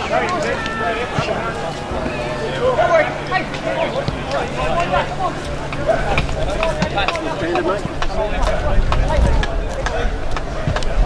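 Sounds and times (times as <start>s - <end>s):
indistinct voices calling: 0.0s - 11.0s
wind rumbling on microphone: 5.2s - 11.0s.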